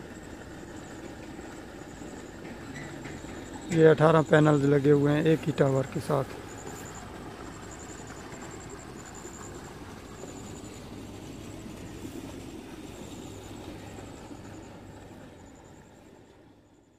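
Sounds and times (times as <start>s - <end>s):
insect chirping in pulsed trills: 0.0s - 16.9s
low hum: 0.0s - 16.9s.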